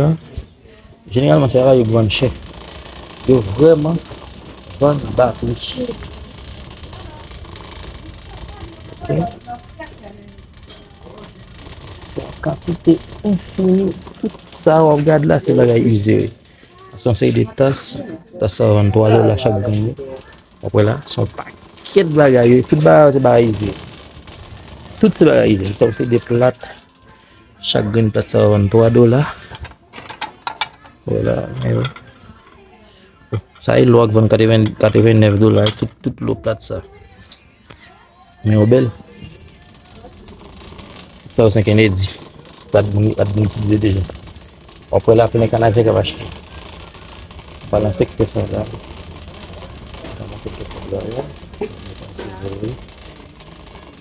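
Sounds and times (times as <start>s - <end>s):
faint voices: 0.0s - 54.0s
store background noise: 0.0s - 54.0s
shopping cart rumbling: 1.1s - 32.6s, 38.4s - 54.0s.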